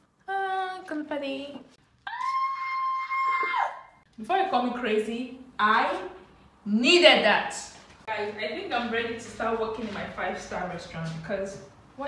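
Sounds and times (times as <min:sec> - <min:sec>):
woman screaming: 0:02.0 - 0:04.0.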